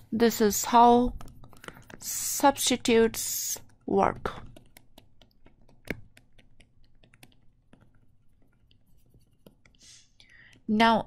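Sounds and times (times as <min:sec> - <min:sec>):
faint clicks and scratches: 0:00.0 - 0:11.0
soft breath: 0:09.8 - 0:10.7.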